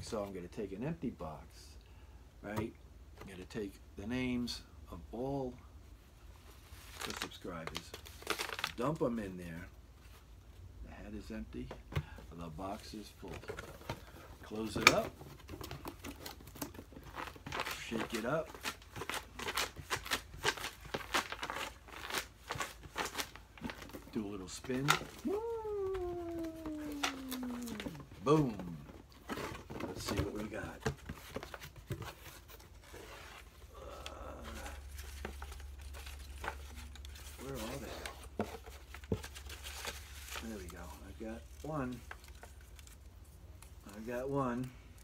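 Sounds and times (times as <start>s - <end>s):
cardboard and paper rustling: 6.4s - 9.4s, 11.2s - 45.0s.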